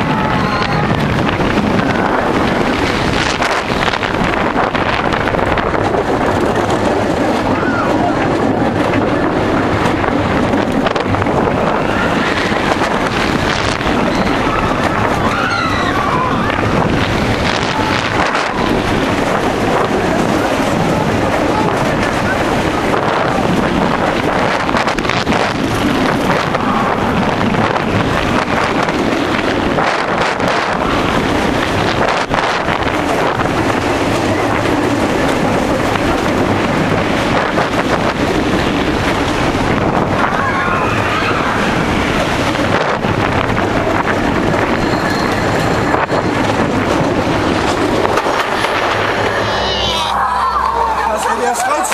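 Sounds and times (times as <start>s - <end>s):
riders screaming: 0.0s - 3.5s, 7.1s - 9.2s, 11.5s - 23.6s, 38.1s - 45.9s, 48.5s - 51.9s
roller coaster rumbling on wooden track: 0.0s - 51.9s
wind buffeting microphone: 0.0s - 51.9s.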